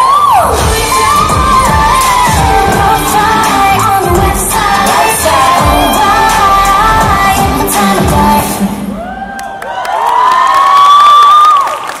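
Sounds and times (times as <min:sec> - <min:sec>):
pop song over speakers: 0:00.0 - 0:09.2
audience screaming and cheering: 0:00.0 - 0:12.0.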